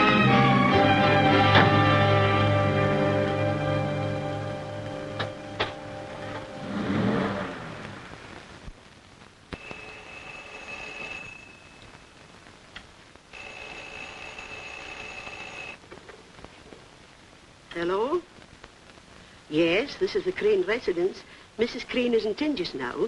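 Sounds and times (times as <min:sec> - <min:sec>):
film score music: 0:00.0 - 0:07.5
telephone bell ringing: 0:09.6 - 0:11.9, 0:13.3 - 0:15.8.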